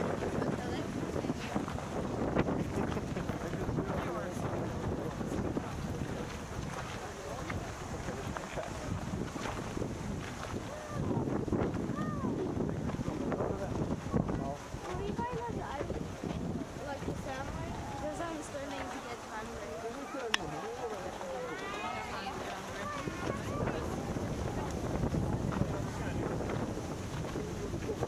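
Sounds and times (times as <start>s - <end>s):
wind buffeting microphone: 0.0s - 28.0s
faint voices of passers-by: 10.4s - 28.0s.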